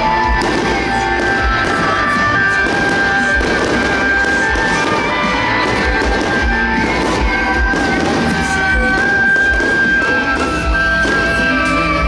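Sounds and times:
high wind instrument melody: 0.0 - 12.0.

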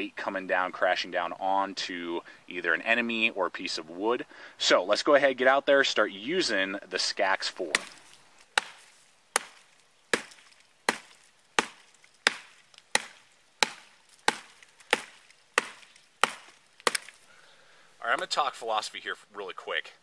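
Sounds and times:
tomahawk chopping into log: 7.6 - 17.2.

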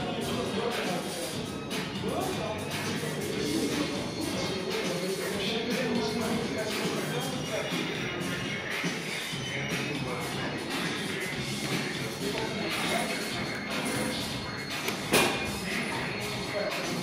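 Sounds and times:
chatter: 0.0 - 17.0
gym background music: 0.0 - 17.0.

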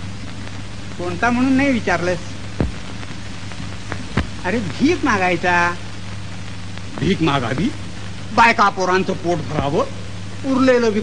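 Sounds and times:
film soundtrack hiss and hum: 0.0 - 11.0.

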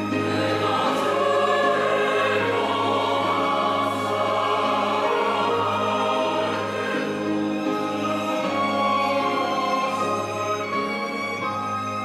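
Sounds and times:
choir singing a hymn: 0.0 - 12.0
string ensemble: 0.0 - 12.0.

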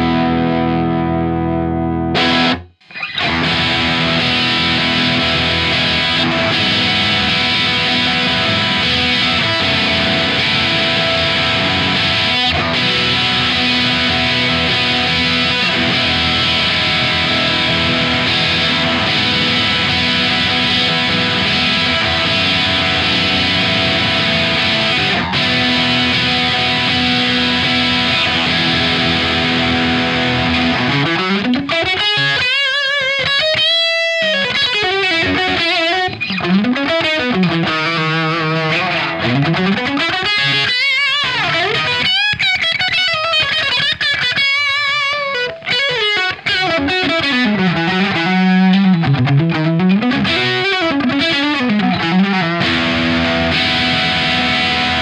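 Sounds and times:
distorted electric guitar: 0.0 - 55.0.

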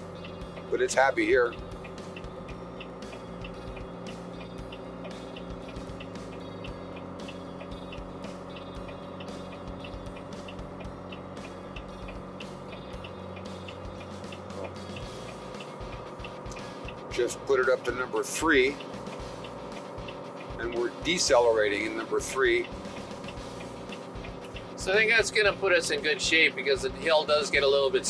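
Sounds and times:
diesel truck engine drone: 0.0 - 28.0
fast engine brake ticking: 0.0 - 28.0.

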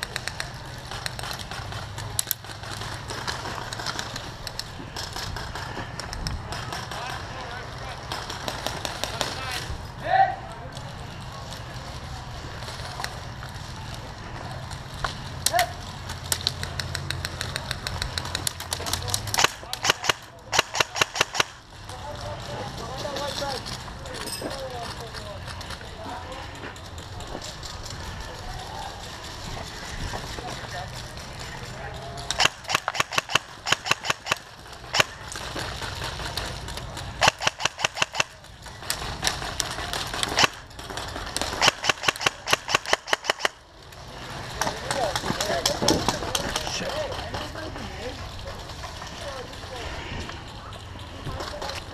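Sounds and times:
airsoft guns firing bursts: 0.0 - 7.4, 8.0 - 9.5, 16.6 - 21.7, 31.1 - 43.7
airsoft gun shots: 19.4 - 21.6, 32.4 - 35.1, 37.2 - 38.3, 41.4 - 43.6.

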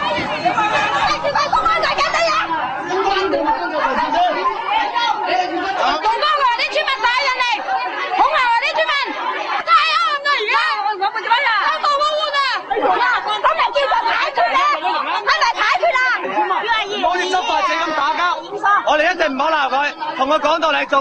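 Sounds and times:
crowd talking and calling out: 0.0 - 21.0.

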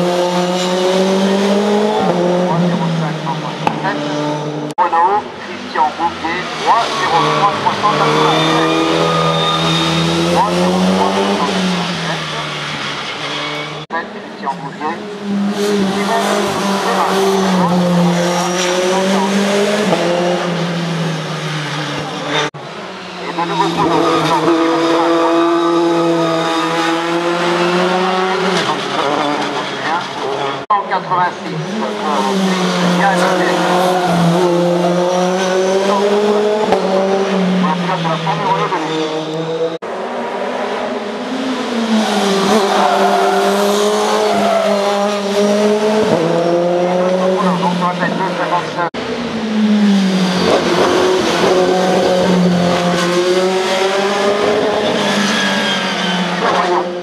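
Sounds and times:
racing car engines revving: 0.0 - 57.0.

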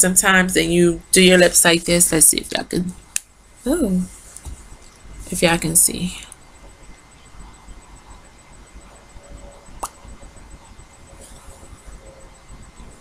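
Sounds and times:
faint room noise: 0.0 - 13.0.

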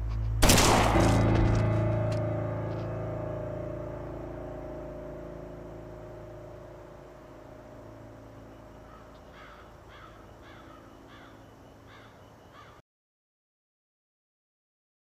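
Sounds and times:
low musical drone: 0.0 - 12.8
crow cawing: 8.8 - 12.8.

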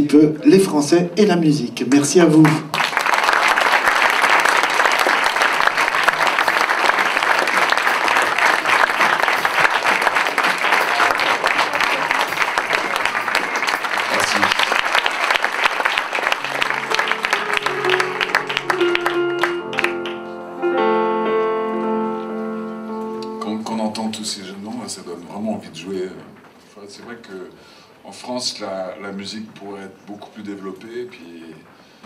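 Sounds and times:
audience applauding: 2.4 - 20.4
piano notes: 16.1 - 24.6.

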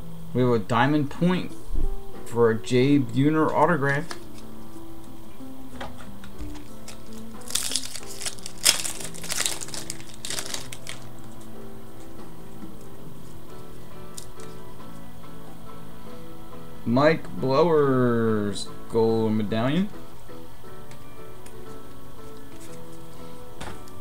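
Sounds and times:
background music: 0.0 - 24.0
wrapper crinkling: 6.5 - 11.5.

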